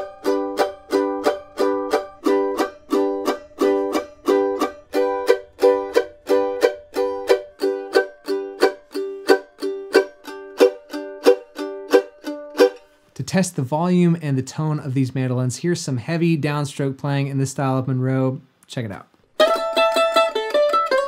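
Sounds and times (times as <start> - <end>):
mandolin chop chords: 0.0 - 16.8, 19.3 - 21.0.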